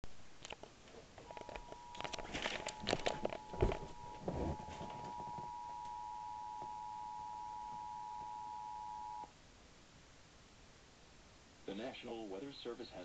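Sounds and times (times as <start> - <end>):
handling bumps: 1.0 - 5.6
emergency alert two-tone signal: 1.4 - 9.3.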